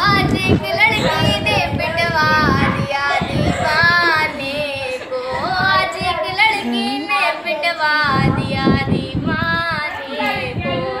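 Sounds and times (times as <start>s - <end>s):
girl singing solo: 0.0s - 11.0s.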